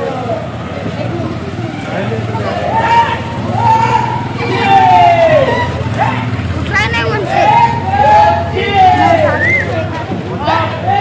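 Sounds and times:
low engine hum: 0.0 - 11.0
men shouting calls: 1.7 - 11.0.

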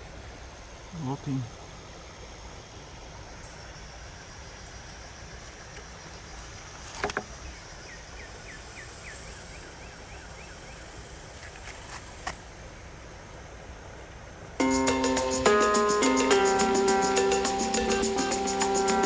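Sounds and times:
outdoor background noise by creek: 0.0 - 19.0
fast high chirps: 14.6 - 19.0.

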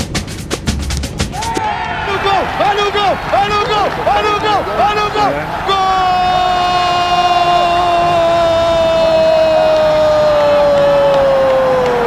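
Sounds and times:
person shouting goal cry: 2.0 - 10.2.

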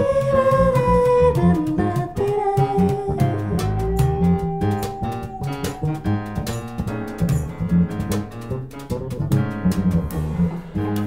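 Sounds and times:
woman singing wordless line: 0.0 - 6.3
electric bass: 0.0 - 11.0
guitar: 0.0 - 11.0
hand percussion: 0.0 - 11.0.

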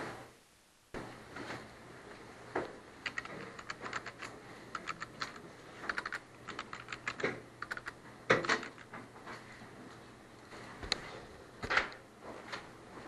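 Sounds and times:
computer keyboard typing: 3.0 - 8.9.

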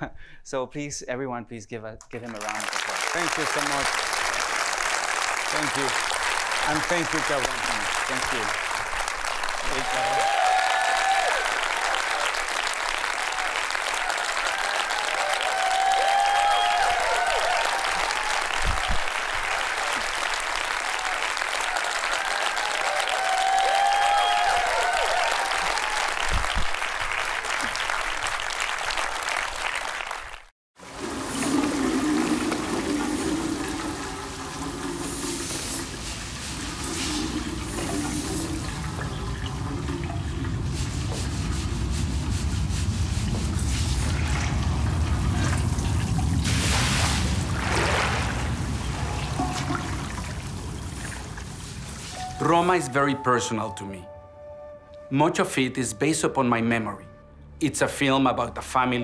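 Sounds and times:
audience cheering: 2.2 - 35.0, 44.0 - 45.9
audience applauding: 2.2 - 35.8
water sloshing across tiled floor: 30.8 - 52.3.

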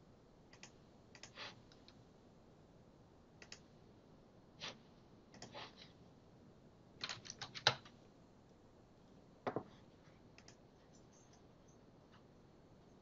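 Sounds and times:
keyboard and mouse clicks: 0.5 - 2.0, 3.4 - 3.7, 5.3 - 5.6, 7.0 - 8.0, 10.3 - 11.5.

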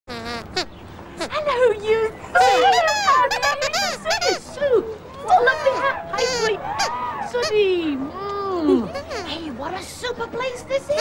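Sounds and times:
puppet squeaker squeaks: 2.4 - 4.4, 5.6 - 7.6.

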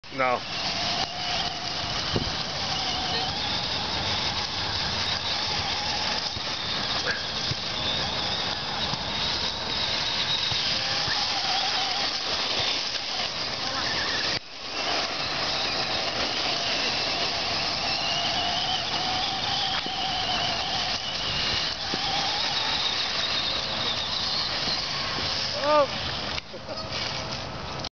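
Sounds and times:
steady hiss: 0.0 - 27.8
toy truck motor whine: 0.1 - 27.2.

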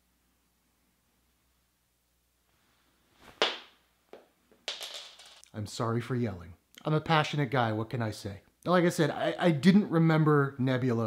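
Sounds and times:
sharp tap: 3.4 - 3.7.

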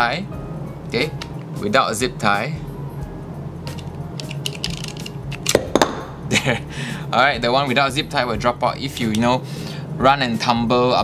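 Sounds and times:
plastic holsters rustling: 3.8 - 5.6.

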